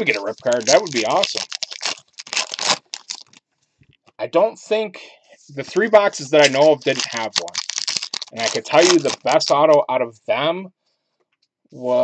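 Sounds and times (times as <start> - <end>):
wrapper being torn open: 0.0 - 3.4, 6.4 - 9.6.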